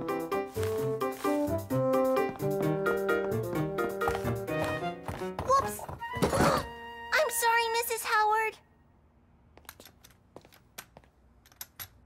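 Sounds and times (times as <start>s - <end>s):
faint footsteps: 2.2s - 6.3s
crutch tapping on floor: 4.0s - 6.4s.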